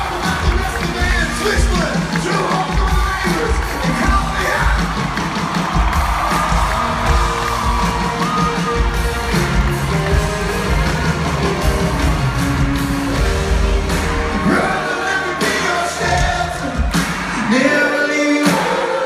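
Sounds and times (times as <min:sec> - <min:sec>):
crowd yelling and whooping: 0:00.0 - 0:19.0
live rock band: 0:00.0 - 0:19.0.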